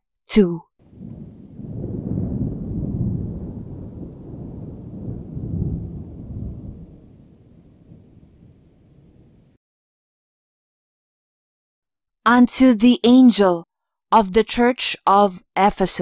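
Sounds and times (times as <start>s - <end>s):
rolling thunder: 0.8s - 9.6s.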